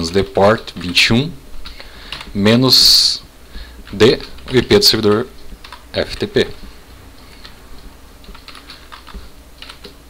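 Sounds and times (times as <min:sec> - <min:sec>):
keyboard keystrokes: 0:07.4 - 0:10.0.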